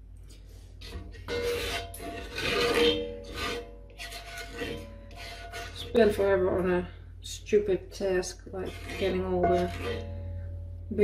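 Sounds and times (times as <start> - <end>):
spoon scraping pot bottom: 0.8 - 6.2, 8.5 - 10.3.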